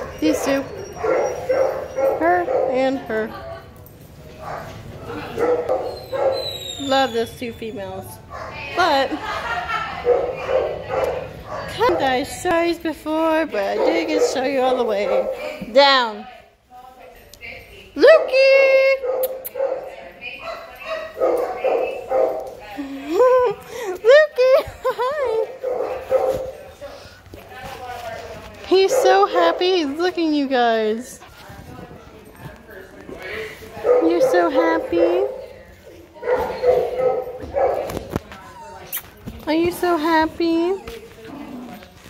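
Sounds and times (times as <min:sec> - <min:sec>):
dogs whining and yipping: 0:00.0 - 0:02.3, 0:05.6 - 0:08.0, 0:38.3 - 0:39.2.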